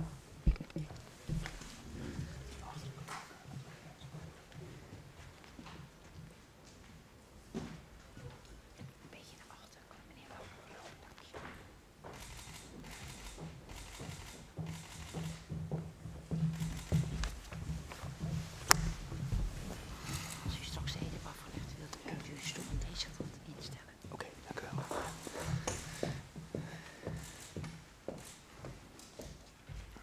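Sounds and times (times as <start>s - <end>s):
person whispering: 1.9s - 4.2s, 9.1s - 11.5s, 20.0s - 25.6s
small clicks and rustles: 10.9s - 15.6s, 16.3s - 26.2s, 27.0s - 30.0s.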